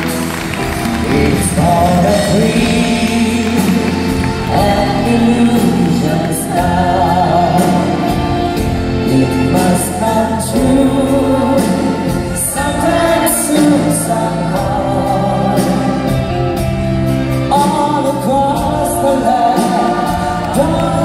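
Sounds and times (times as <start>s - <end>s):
live band playing slow ballad: 0.0s - 21.0s
choir singing sustained chords: 19.0s - 21.0s.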